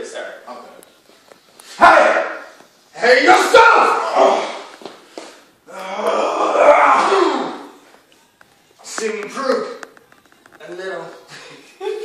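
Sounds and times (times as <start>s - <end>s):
man's strained vocal cry: 5.7s - 7.8s.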